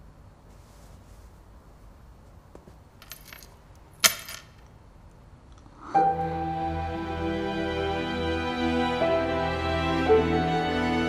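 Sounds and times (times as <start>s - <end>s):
bracelet clattering on wooden floor: 2.6s - 4.7s
bracelet jingling: 3.0s - 4.7s.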